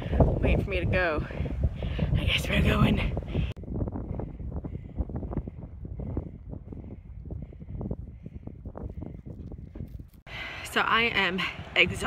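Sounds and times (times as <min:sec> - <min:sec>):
gusty wind on microphone: 0:00.0 - 0:12.0.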